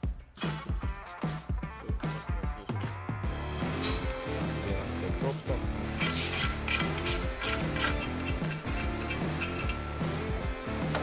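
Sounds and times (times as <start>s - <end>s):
background music: 0.0s - 11.0s
rasping ratchet-like metal strokes: 5.9s - 10.0s.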